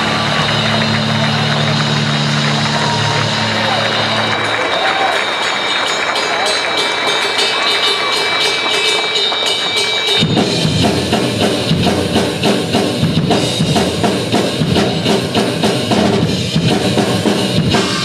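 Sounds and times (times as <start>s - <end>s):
audience cheering and clapping: 0.0s - 10.6s
rock backing track: 10.2s - 18.0s.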